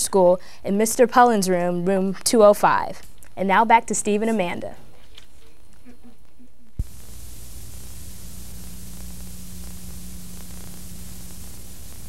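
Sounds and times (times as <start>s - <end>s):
low electrical hum: 0.0s - 12.0s
static hiss: 6.6s - 12.0s.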